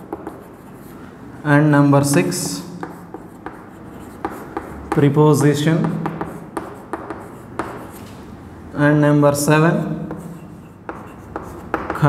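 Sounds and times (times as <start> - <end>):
chalk tapping and scratching: 0.0 - 1.0, 2.0 - 8.2, 9.8 - 12.0.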